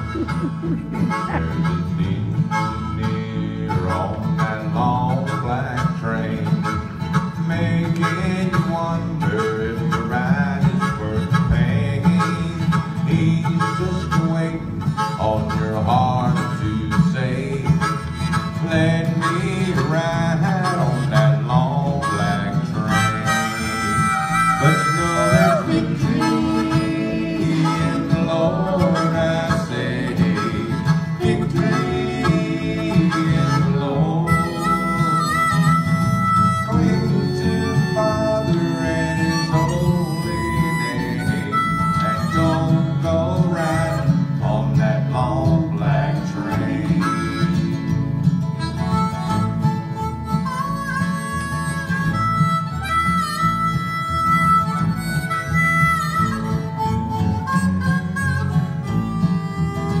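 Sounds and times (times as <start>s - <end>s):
harmonica playing lead: 0.0s - 44.6s, 45.9s - 60.0s
strummed acoustic guitars: 0.0s - 60.0s
upright bass: 0.0s - 60.0s.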